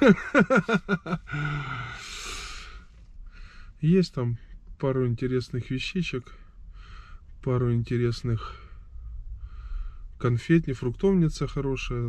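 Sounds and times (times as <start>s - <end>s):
man sighing: 1.0s - 2.8s.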